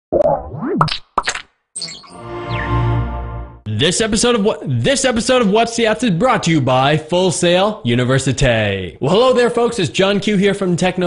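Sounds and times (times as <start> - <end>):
cartoon pops: 0.1 - 1.5.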